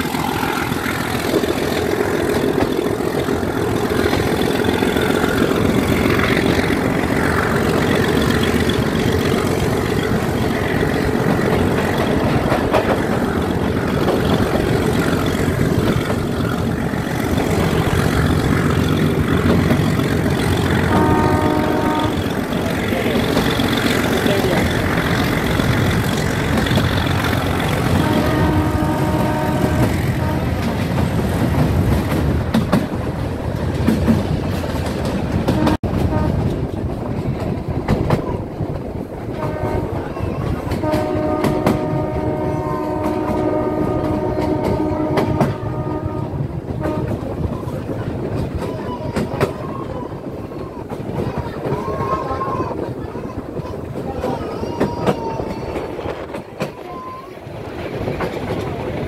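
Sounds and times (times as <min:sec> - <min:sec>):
train coaches rumbling: 0:00.0 - 0:59.0
wheels clattering over rail joints: 0:00.0 - 0:59.0
diesel locomotive horn: 0:20.4 - 0:22.9, 0:26.1 - 0:30.8, 0:35.5 - 0:36.5, 0:39.3 - 0:47.4.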